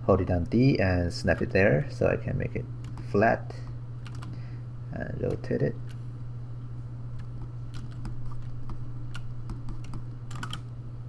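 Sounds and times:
steady low hum: 0.0s - 11.0s
computer keyboard clicks: 4.0s - 4.4s, 7.2s - 8.5s, 9.1s - 10.7s.

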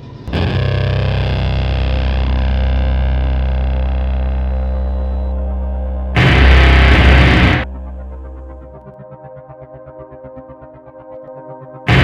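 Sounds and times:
low sustained music drone: 0.0s - 12.0s.

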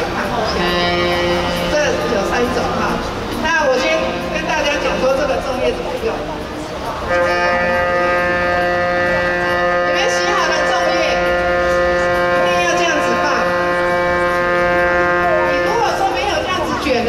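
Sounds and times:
steady humming tone: 0.0s - 17.0s.

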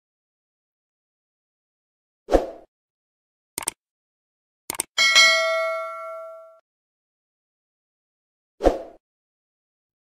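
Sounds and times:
double mouse click: 4.7s - 4.9s
bright bell ding: 5.0s - 6.6s.

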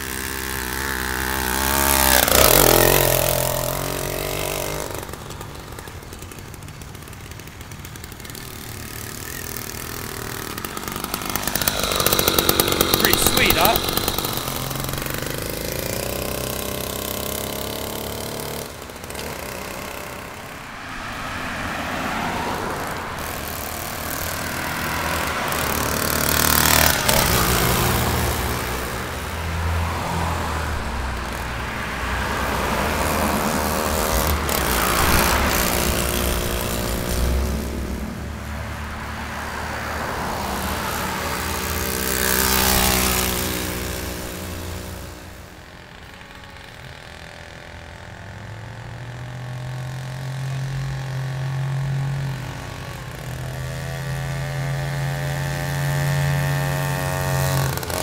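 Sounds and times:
motorized bicycle engine buzzing: 0.0s - 58.0s.

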